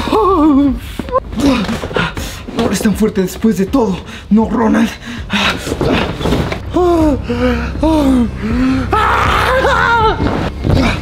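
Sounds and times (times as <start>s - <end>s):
person crying out in pain: 6.7s - 10.2s
person gasping: 6.8s - 8.9s.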